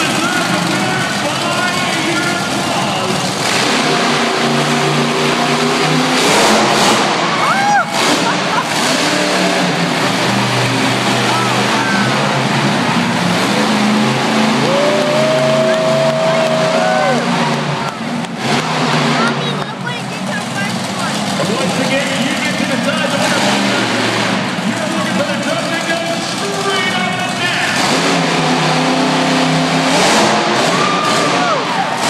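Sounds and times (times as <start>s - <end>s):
monster truck engine revving: 0.0s - 32.0s
spectators shouting: 7.1s - 9.7s, 10.9s - 18.9s, 30.5s - 32.0s.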